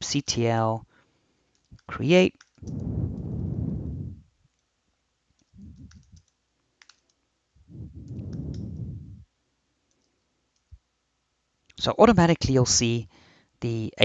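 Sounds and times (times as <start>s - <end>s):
low rushing swells: 2.6s - 4.2s, 5.6s - 6.2s, 7.7s - 9.2s
keyboard keys clicking: 5.5s - 7.1s.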